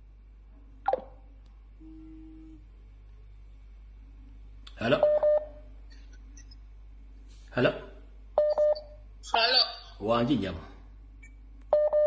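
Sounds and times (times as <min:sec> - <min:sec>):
low telephone tone: 0:01.8 - 0:02.8
steady telephone beep: 0:05.0 - 0:05.5, 0:08.4 - 0:08.9, 0:11.8 - 0:12.0.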